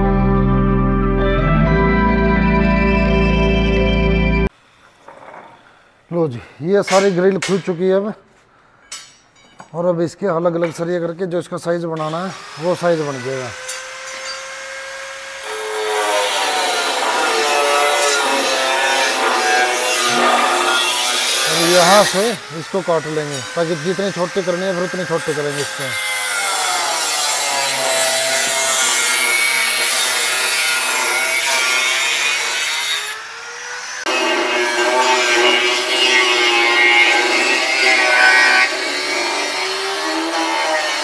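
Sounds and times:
angle grinder cutting steel: 12.0 - 41.0.

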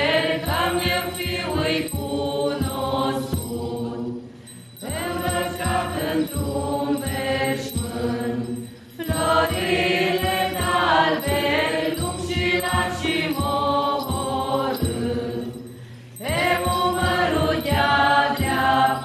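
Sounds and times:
women singing a church chant: 0.0 - 19.0.

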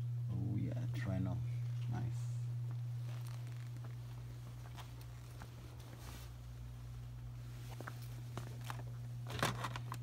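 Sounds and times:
steady low hum: 0.0 - 10.0
plastic crinkling and clicking: 7.9 - 10.0.

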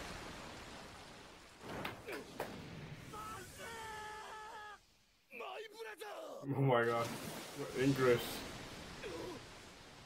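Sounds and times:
rain-like hiss: 0.0 - 10.0.

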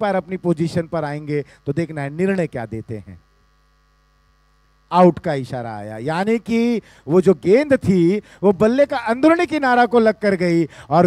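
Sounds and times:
faint electrical hum: 0.0 - 11.0
person speaking: 4.9 - 11.0.

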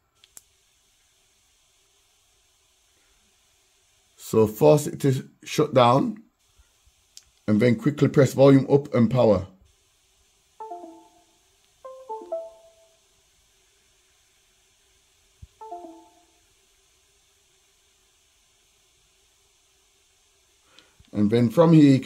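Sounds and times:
two-note electronic chimes: 10.6 - 11.3, 11.9 - 13.0, 15.6 - 16.3.

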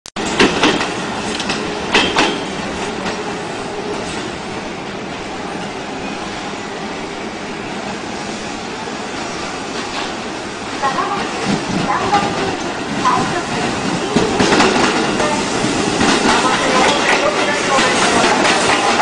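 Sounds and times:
train running: 0.2 - 19.0.

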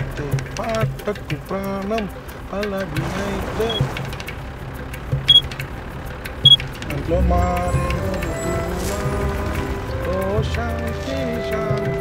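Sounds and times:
car engine drone: 0.1 - 11.9.

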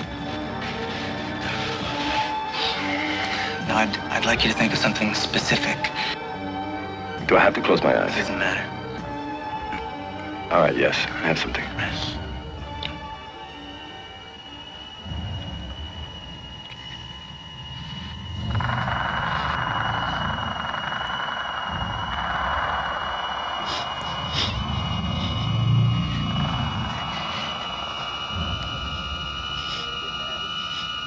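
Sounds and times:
steady high whine: 0.0 - 31.0
low electronic rumble: 14.6 - 31.0
rushing electronic layer: 17.9 - 30.8.

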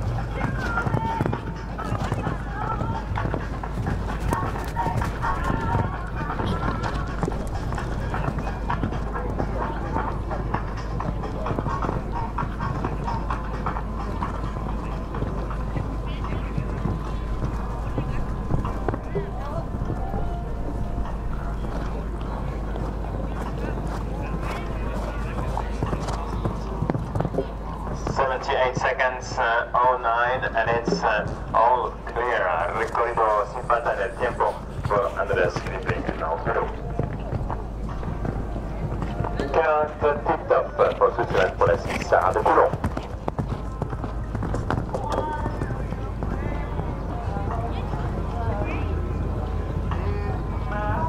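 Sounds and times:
hoofbeats on sand: 0.0 - 20.1, 21.6 - 49.0
distant voices: 0.0 - 51.0.

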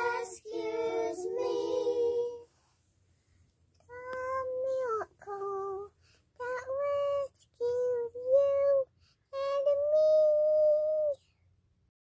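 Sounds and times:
children singing unaccompanied: 0.0 - 2.4.

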